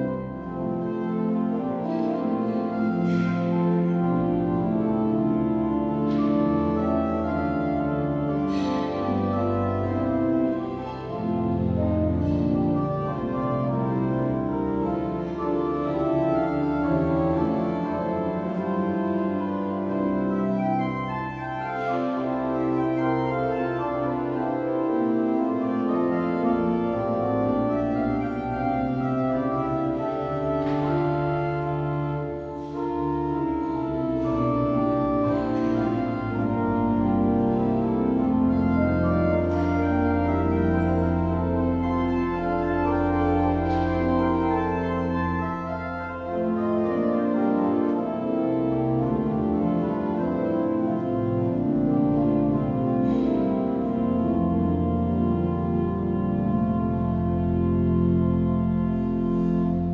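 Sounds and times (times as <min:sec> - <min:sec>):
pipe organ chords: 0:00.0 - 0:59.9.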